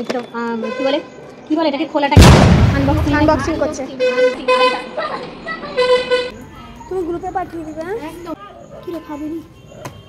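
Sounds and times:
women talking: 0.0s - 5.0s, 6.5s - 9.6s
horn tooting: 3.9s - 5.0s, 5.7s - 6.4s.

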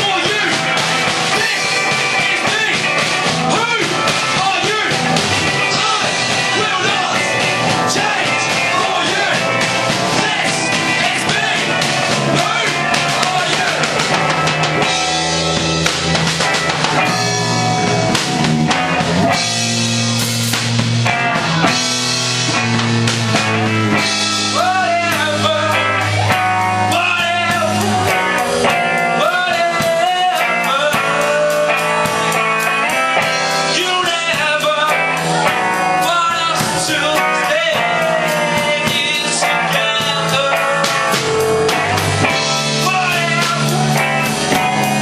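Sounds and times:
bass guitar: 0.0s - 45.0s
drum kit: 0.0s - 45.0s
electric guitar: 0.0s - 45.0s
man singing into microphone: 5.6s - 14.0s, 24.5s - 28.1s, 29.1s - 32.3s, 33.7s - 35.3s, 35.9s - 41.7s, 42.6s - 44.0s.

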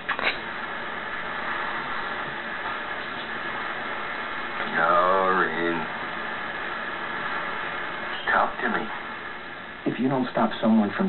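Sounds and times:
television static hiss: 0.0s - 11.0s.

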